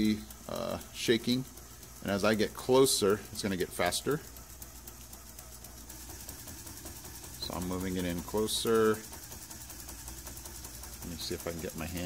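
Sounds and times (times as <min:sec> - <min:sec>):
motor shaking plastic rattle: 0:00.0 - 0:12.0.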